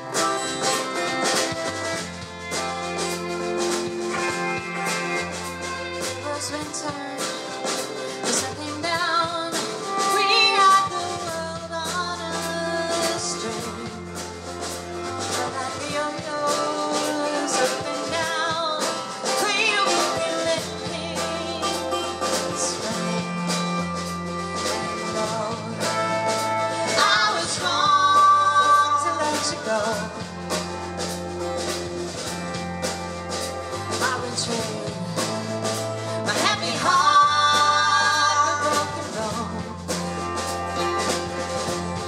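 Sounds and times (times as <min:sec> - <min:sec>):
acoustic guitar: 0:00.0 - 0:42.0
drum beat: 0:00.0 - 0:42.0
electric bass: 0:00.0 - 0:42.0
woman singing: 0:05.0 - 0:30.8, 0:33.6 - 0:42.0.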